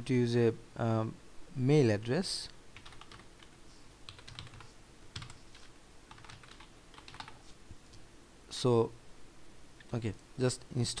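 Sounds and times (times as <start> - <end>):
faint keyboard typing: 2.8 - 8.0.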